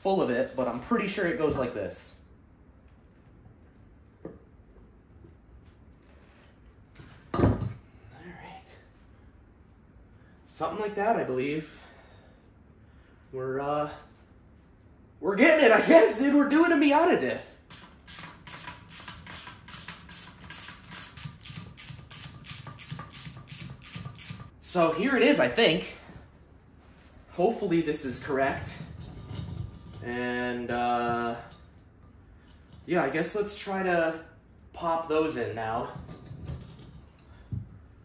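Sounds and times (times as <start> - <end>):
hand ratchet clicking: 17.7 - 24.5.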